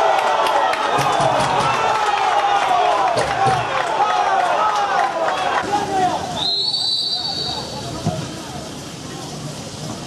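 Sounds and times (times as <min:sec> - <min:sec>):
excited shouting voices: 0:00.0 - 0:06.4.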